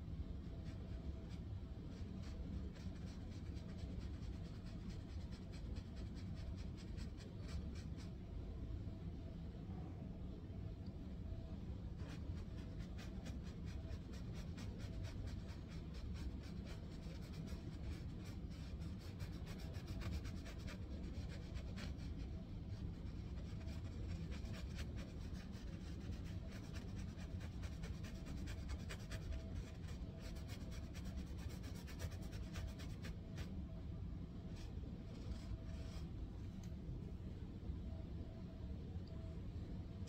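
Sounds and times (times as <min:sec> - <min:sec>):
faint low hum: 0:00.0 - 0:40.0
low room rumble: 0:00.0 - 0:40.0
paintbrush stroking on canvas: 0:12.0 - 0:33.6.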